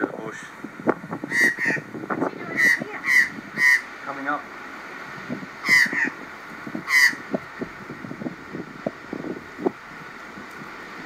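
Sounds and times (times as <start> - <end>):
magpies harsh alarm calls: 1.3 - 3.9, 5.6 - 6.2, 6.8 - 7.2.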